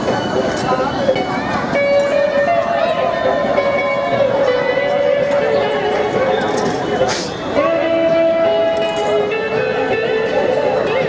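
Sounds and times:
many voices talking: 0.0 - 11.0
music with long held notes: 0.0 - 11.0.

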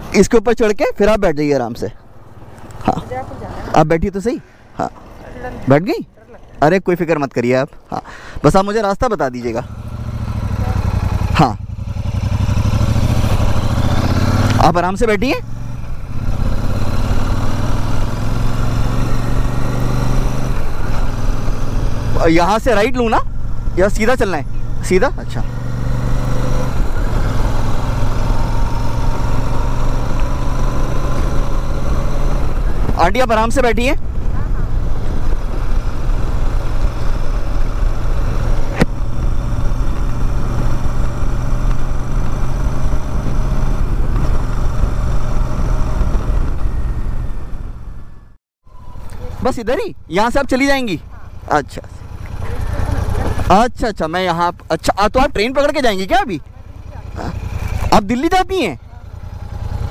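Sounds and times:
wind and road noise: 0.0 - 59.9
motorcycle engine running: 7.9 - 59.9.

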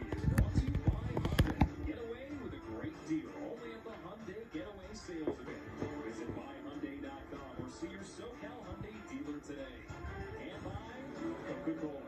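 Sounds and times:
sharp pops and thuds: 0.0 - 2.0
television music: 0.0 - 12.0
television voices: 0.0 - 12.0.

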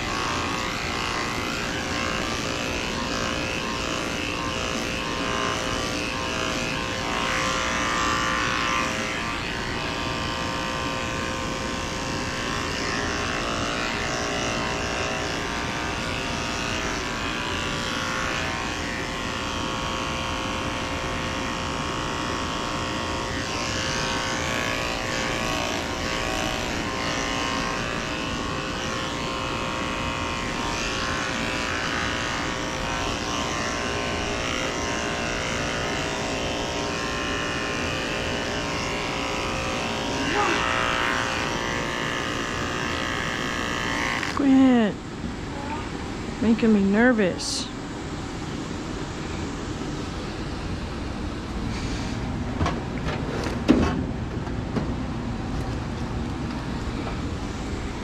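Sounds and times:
electric clipper humming: 0.0 - 58.0.

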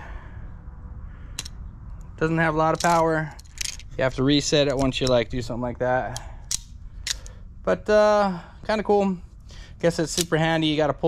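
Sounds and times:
low background rumble: 0.0 - 11.0.

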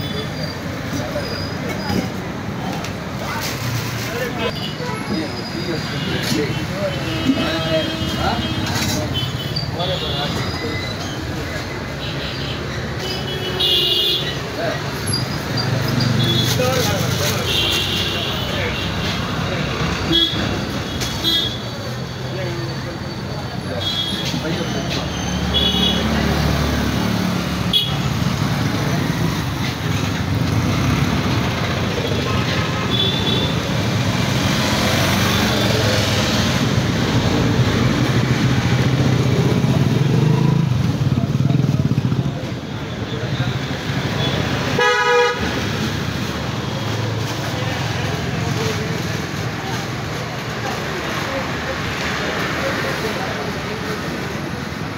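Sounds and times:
passing vehicles: 0.0 - 54.9
vehicle horn toot: 44.8 - 45.4.

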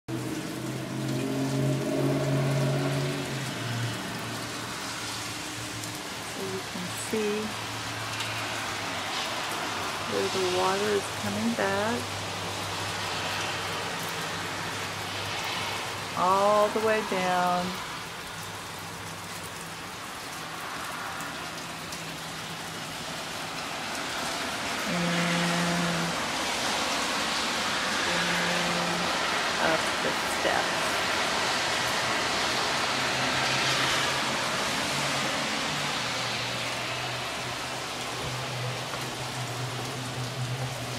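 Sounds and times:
steady rain falling: 0.1 - 40.9
water dripping off roof: 0.1 - 40.9.

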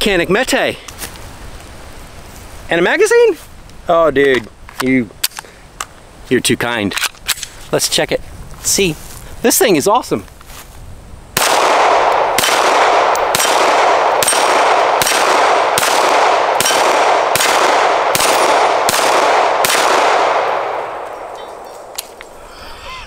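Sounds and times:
pistol shots: 11.4 - 22.2.

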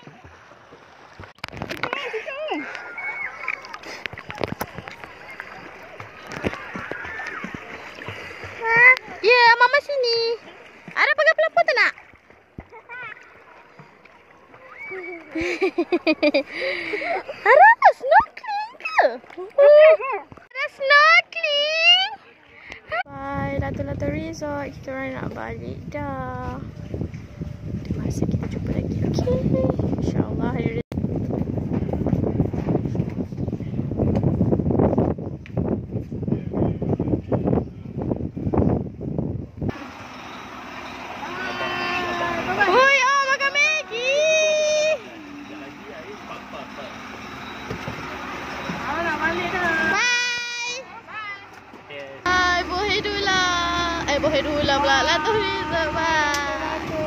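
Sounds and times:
water lapping and sloshing: 0.0 - 34.5, 39.7 - 57.0
wind buffeting microphone: 23.0 - 39.7
open-air hiss: 39.7 - 42.6.

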